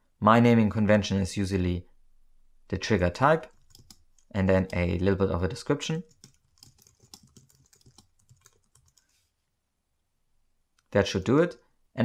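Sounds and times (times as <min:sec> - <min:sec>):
typing on computer keyboard: 0:03.4 - 0:05.0, 0:06.0 - 0:09.1.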